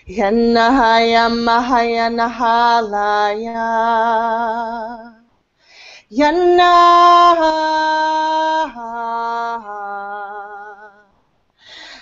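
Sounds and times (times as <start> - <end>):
woman chanting: 0.0 - 5.3, 6.0 - 11.2
short breath: 5.6 - 6.1, 11.6 - 12.0.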